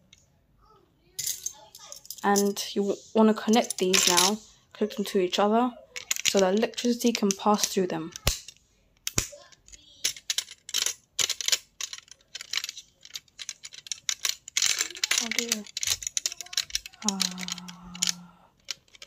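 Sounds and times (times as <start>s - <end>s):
plastic pieces snapping together: 6.0s - 19.0s.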